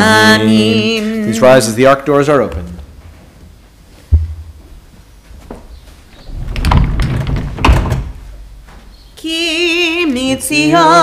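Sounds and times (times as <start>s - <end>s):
sliding doors rumbling open: 6.2s - 8.7s.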